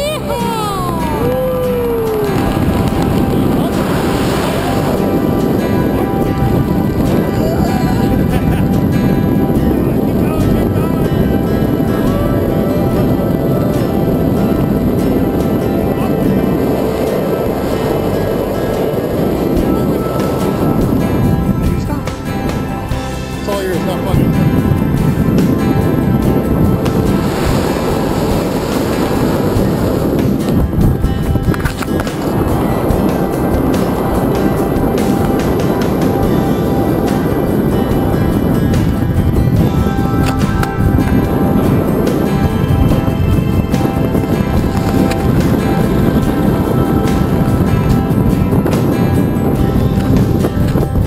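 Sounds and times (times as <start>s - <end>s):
background music: 0.0s - 51.0s.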